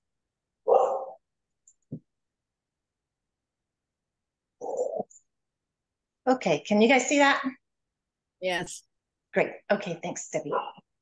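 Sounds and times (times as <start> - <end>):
dog barking: 0.6 - 1.2, 10.4 - 10.8.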